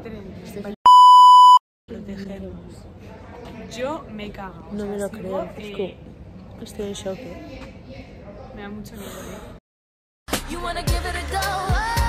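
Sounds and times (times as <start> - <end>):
censor bleep: 0.9 - 1.6.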